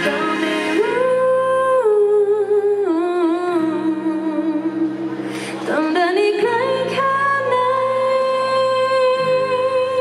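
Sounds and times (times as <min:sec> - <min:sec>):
woman singing long held notes: 0:00.0 - 0:05.1
acoustic guitar: 0:00.0 - 0:10.0.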